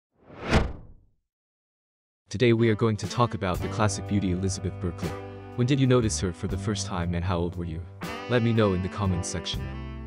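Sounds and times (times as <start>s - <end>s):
whoosh sound effect: 0.2s - 1.0s.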